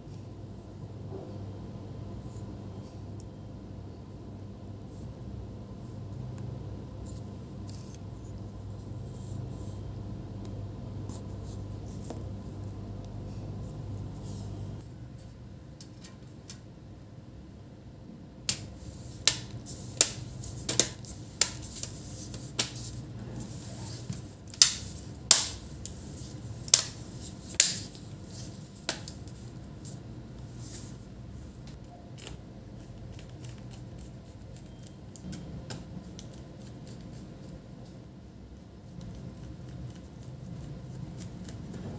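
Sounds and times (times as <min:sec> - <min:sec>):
low steady hum: 0:00.0 - 0:41.9.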